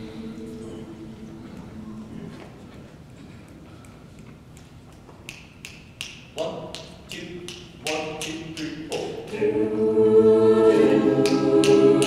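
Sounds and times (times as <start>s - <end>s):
group singing held chords: 0.0s - 2.4s, 9.0s - 12.0s.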